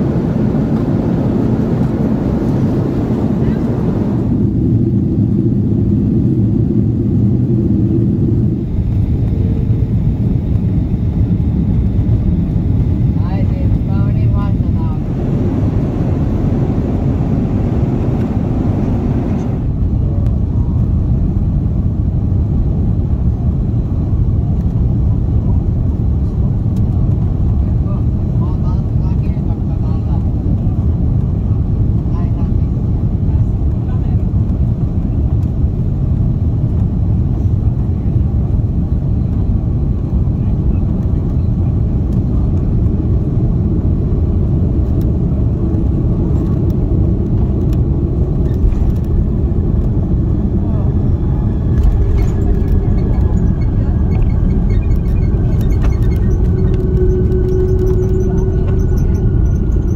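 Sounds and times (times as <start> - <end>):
jet engine cabin rumble: 0.0 - 59.9.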